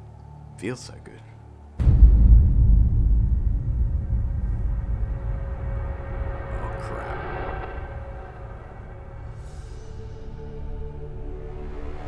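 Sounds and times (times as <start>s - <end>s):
deep rumble: 1.8s - 11.8s
rushing swell: 1.8s - 12.0s.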